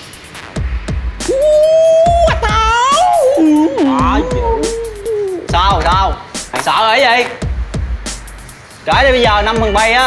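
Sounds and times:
person howling: 1.2s - 5.8s.

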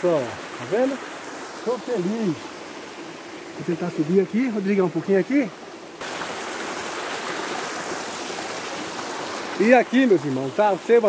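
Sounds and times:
stream running over rocks: 0.0s - 11.0s.

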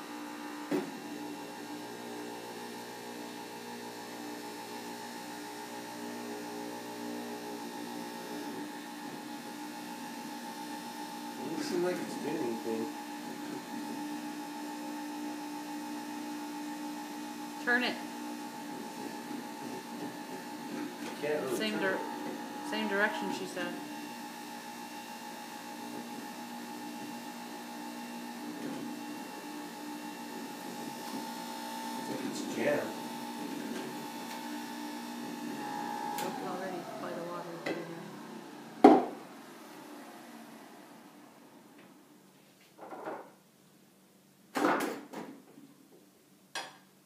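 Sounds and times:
juicer motor running: 0.0s - 42.2s.

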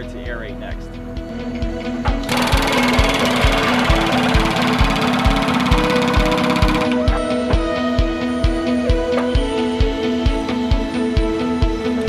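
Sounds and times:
background music with beat: 0.0s - 12.0s
pneumatic hammer driving probe: 2.0s - 7.6s.

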